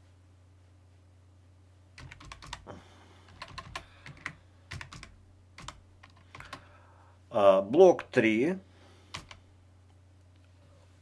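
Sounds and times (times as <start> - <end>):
computer keyboard typing: 2.0 - 2.7, 3.3 - 6.7, 9.1 - 9.4.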